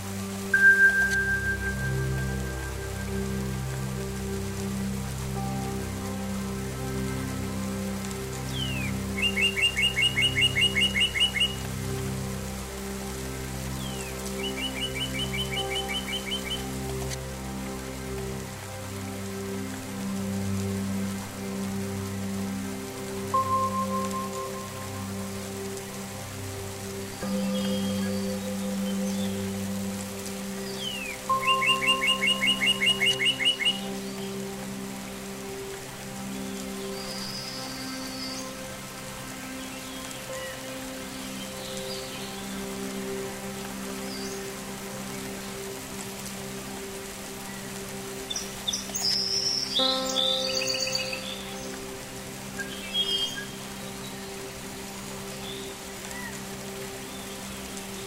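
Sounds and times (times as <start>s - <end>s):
ambient meditation music: 0.0s - 58.0s
steady rain: 0.0s - 58.0s.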